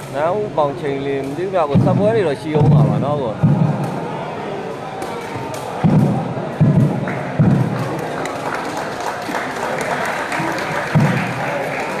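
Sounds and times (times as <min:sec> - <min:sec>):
hubbub of people talking: 0:00.0 - 0:12.0.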